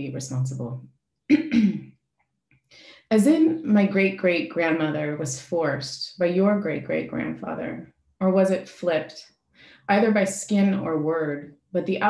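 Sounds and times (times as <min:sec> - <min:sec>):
person clearing throat: 0:01.3 - 0:01.8.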